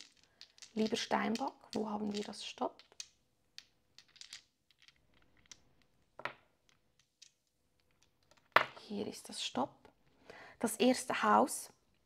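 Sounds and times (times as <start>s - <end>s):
dice clicking on table: 0.0s - 8.8s.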